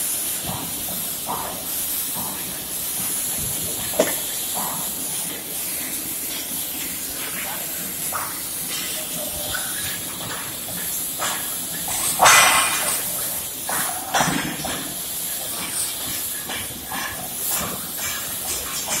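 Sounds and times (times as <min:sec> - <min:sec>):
cutting torch hissing: 0:00.0 - 0:19.0.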